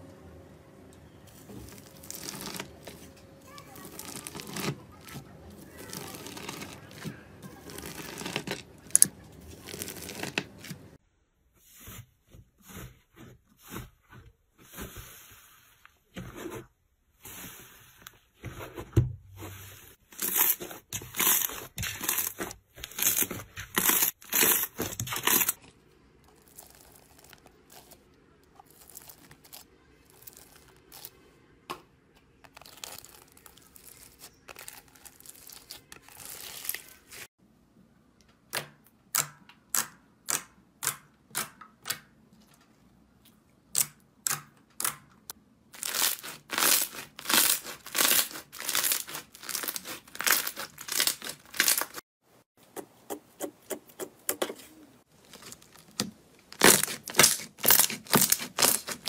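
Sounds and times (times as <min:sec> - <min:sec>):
slime crackling squishes: 0:01.3 - 0:11.0, 0:20.1 - 0:31.2, 0:32.4 - 0:37.3, 0:45.8 - 0:52.0, 0:55.0 - 0:59.0.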